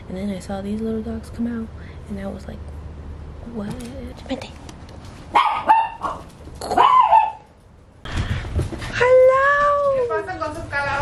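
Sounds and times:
woman talking: 0.0 - 2.7, 3.4 - 4.6
small dog yapping: 5.3 - 7.5.

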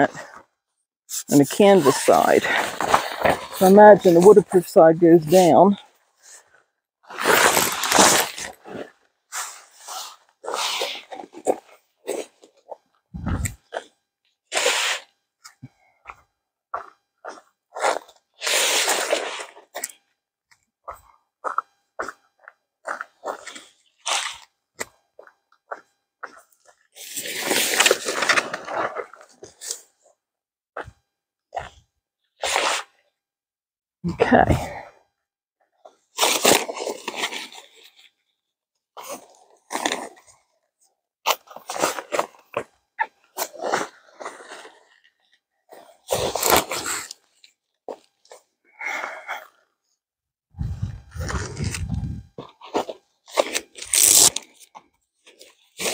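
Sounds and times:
tent groundsheet rustling and flapping: 7.0 - 13.6, 50.6 - 54.6.

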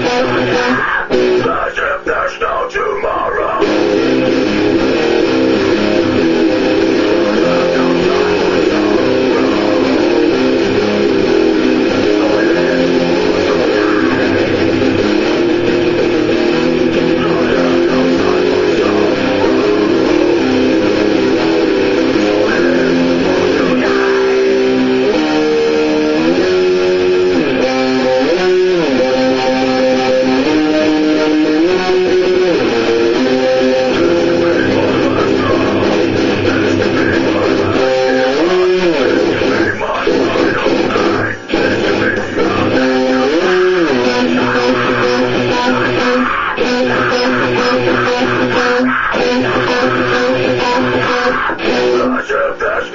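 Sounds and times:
electric guitar riff: 0.0 - 52.9.

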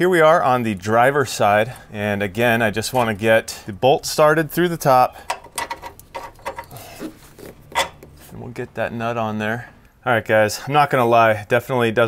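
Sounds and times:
metal clicks and scrapes: 5.2 - 8.2.

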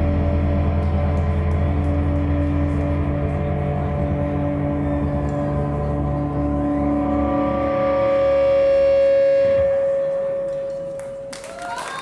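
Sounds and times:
steady high note: 2.5 - 11.4.

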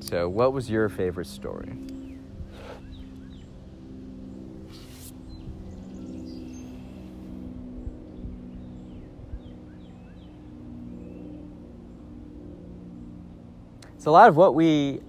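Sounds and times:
distant machinery engine hum: 0.0 - 15.0.

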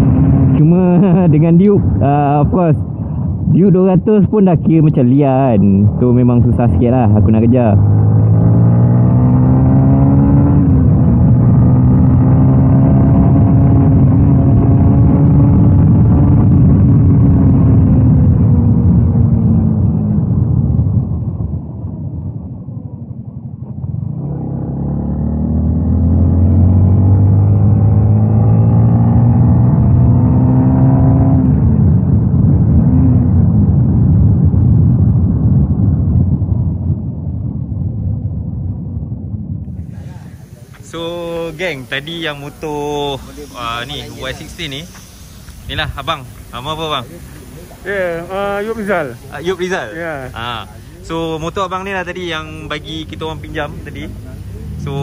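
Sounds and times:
motorcycle engine revving: 0.0 - 1.4, 7.3 - 20.3, 23.8 - 34.0, 39.8 - 55.0.

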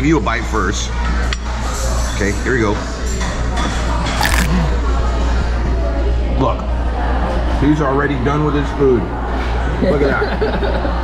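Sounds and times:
taco bite crunch: 4.2 - 4.5.

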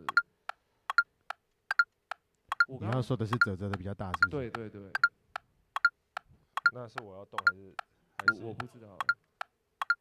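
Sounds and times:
metronome clicks: 0.0 - 7.6, 8.2 - 10.0.

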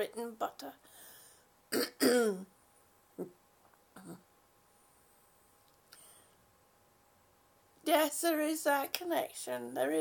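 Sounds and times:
woman clearing her throat: 1.7 - 2.5.

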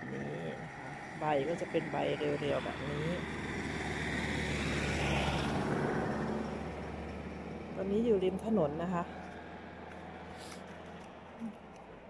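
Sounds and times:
vehicle passing on road: 0.0 - 12.0.

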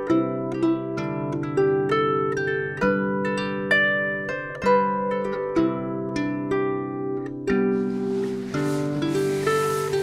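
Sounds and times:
bag rustling: 7.8 - 10.0.

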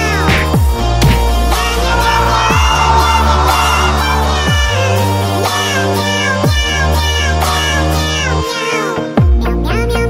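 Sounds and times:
heavy deep bass line: 0.8 - 7.4
electronic dance music: 1.4 - 7.0.

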